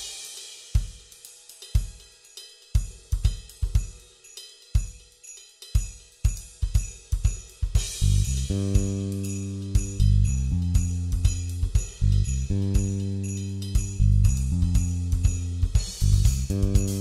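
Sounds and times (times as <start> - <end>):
drum kit playing: 0.0 - 2.2, 5.8 - 17.0.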